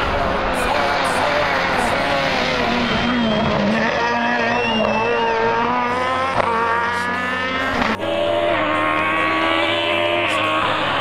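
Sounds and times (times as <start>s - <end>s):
rally car engine accelerating: 0.0s - 11.0s.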